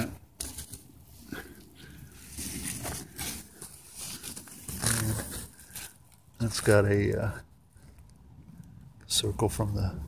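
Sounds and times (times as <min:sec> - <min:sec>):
rustling of vines and leaves: 0:00.0 - 0:10.0.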